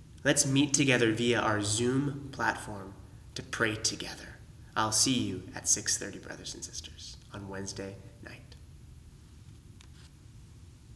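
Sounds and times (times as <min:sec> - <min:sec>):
steady low hum: 0:00.0 - 0:10.9
man's voice: 0:00.2 - 0:08.6.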